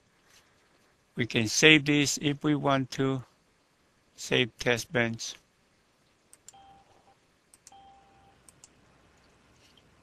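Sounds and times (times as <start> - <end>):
faint mouse clicks: 8.4 - 9.9.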